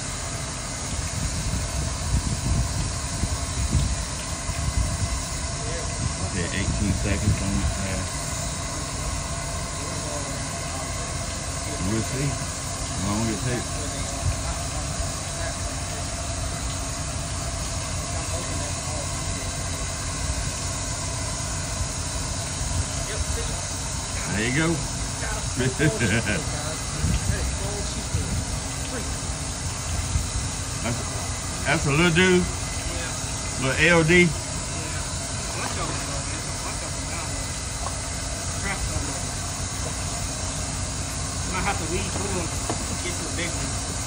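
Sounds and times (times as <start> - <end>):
steady hiss: 0.0 - 44.0
wind rumbling on microphone: 0.9 - 7.9, 26.9 - 28.7.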